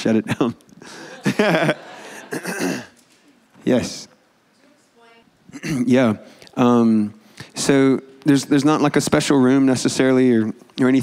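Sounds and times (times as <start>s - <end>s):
man clearing his throat: 2.3s - 2.9s, 5.5s - 6.0s.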